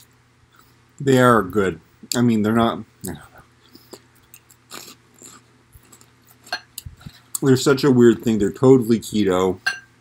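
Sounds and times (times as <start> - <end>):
man chewing crunchy food: 3.7 - 7.5.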